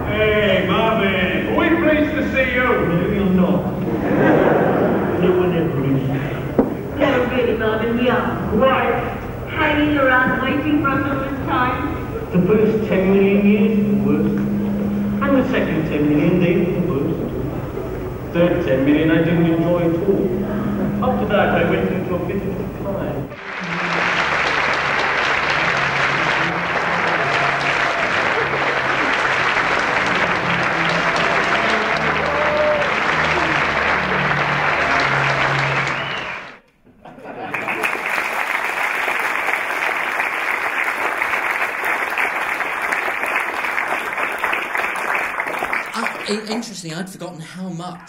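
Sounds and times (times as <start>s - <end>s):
audience applauding: 2.9s - 7.4s, 19.4s - 36.6s, 37.3s - 46.7s
music: 5.5s - 36.6s.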